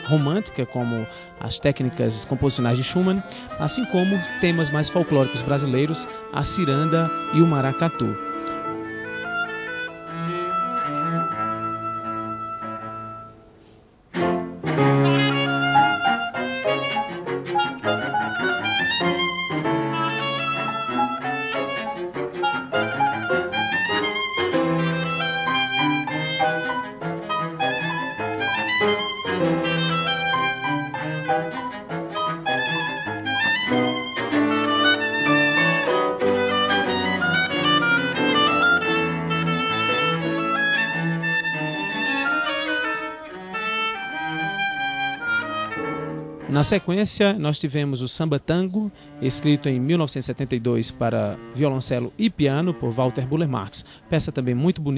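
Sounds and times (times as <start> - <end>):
oboe: 0.0 - 13.4, 14.2 - 46.8
piano notes: 0.0 - 47.7, 48.4 - 54.9
cello: 0.0 - 54.9.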